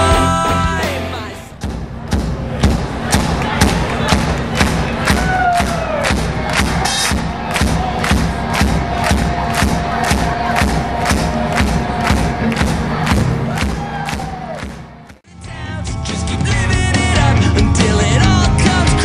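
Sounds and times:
live band playing: 0.0s - 1.6s, 14.7s - 19.0s
steady drum beat: 0.0s - 15.0s
crowd cheering and shouting: 2.5s - 15.2s.

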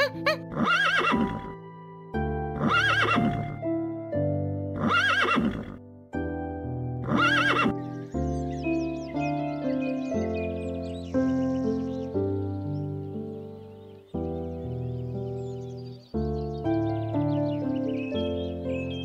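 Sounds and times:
horse whinnying: 0.0s - 1.6s, 2.6s - 3.6s, 4.8s - 5.8s, 7.0s - 7.8s
background music: 0.0s - 19.0s.

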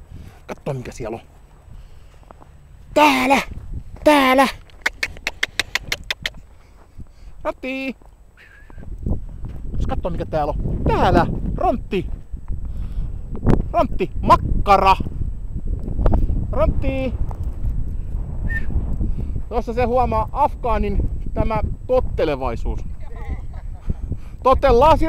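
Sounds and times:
wind rumbling on microphone: 0.0s - 25.0s
rapid sharp clicks: 4.7s - 6.4s.

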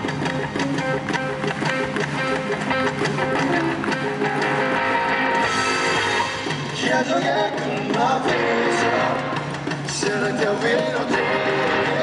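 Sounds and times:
live rock band instrumental: 0.0s - 12.0s.

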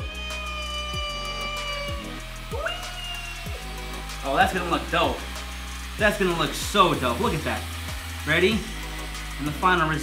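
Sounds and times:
background music with beat: 0.0s - 10.0s
drill whine: 0.0s - 10.0s.

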